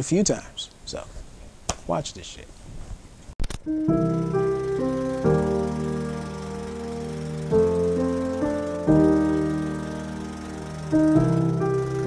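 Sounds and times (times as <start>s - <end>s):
held music chords: 3.7s - 12.0s.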